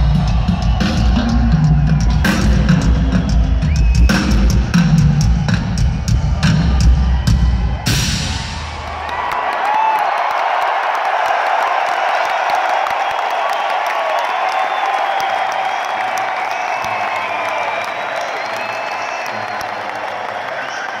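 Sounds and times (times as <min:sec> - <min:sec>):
rock drum kit played hard: 0:00.0 - 0:09.0
crowd cheering and screaming: 0:00.0 - 0:21.0
shrill whistles: 0:03.1 - 0:04.6, 0:13.0 - 0:19.6.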